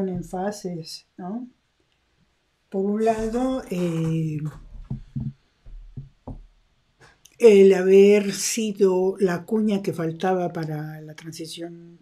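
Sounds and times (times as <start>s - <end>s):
soft low knocks: 3.1s - 6.6s.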